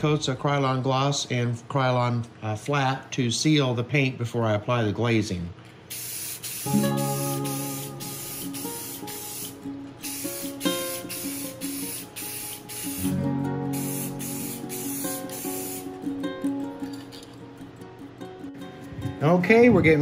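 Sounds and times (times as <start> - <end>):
aerosol can spraying: 5.9 - 16.0
guitar music: 6.6 - 20.0.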